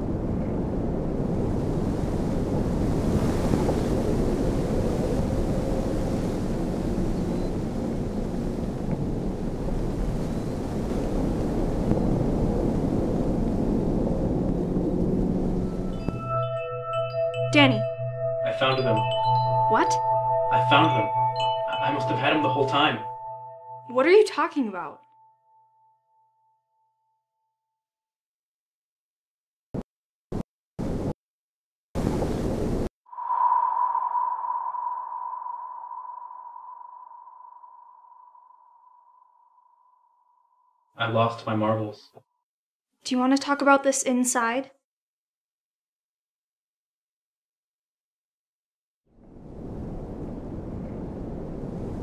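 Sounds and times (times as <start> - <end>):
low rumble: 11.6 - 23.9, 33.1 - 38.2
high ringing tone: 15.5 - 27.2, 33.1 - 40.8.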